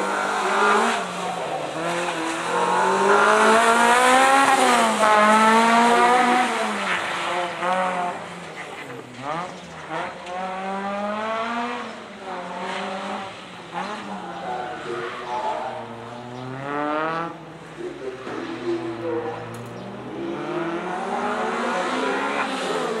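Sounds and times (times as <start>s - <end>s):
car engine revving hard: 0.0s - 23.0s.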